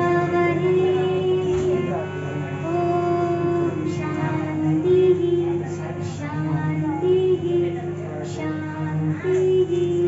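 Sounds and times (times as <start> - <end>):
woman singing a hymn: 0.0 - 10.0.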